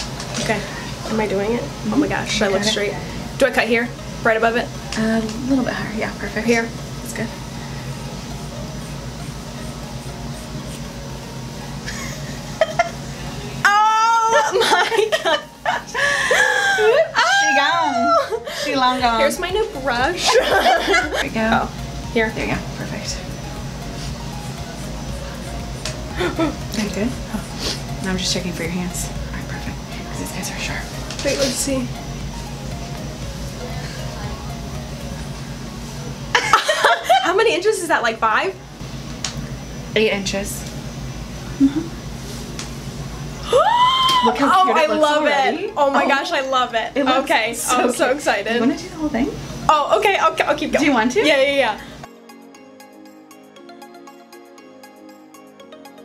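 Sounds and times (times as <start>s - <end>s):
low room hum: 0.0s - 52.1s
woman shrieking and laughing: 13.7s - 18.8s, 43.4s - 44.8s.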